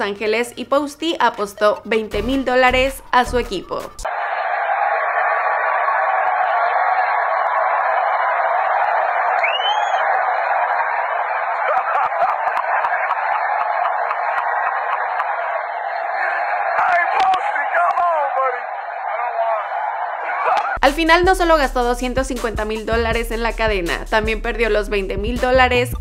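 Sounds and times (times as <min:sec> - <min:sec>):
stadium crowd din: 0:01.3 - 0:25.8.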